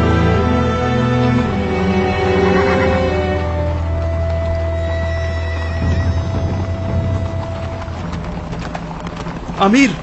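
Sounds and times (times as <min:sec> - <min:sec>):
horse hooves clopping: 0:00.0 - 0:10.0.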